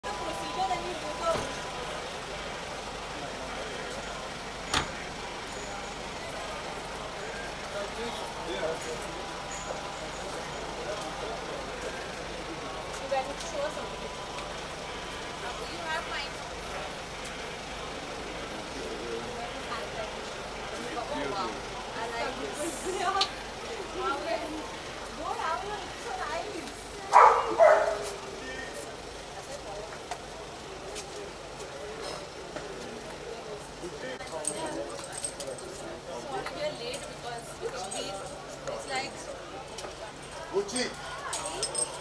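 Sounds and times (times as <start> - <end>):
cars idling: 0.0 - 42.0
distant people talking: 0.0 - 42.0
faint voices: 0.0 - 42.0
traffic and engines hum: 0.0 - 42.0
car door shutting: 4.7 - 5.0.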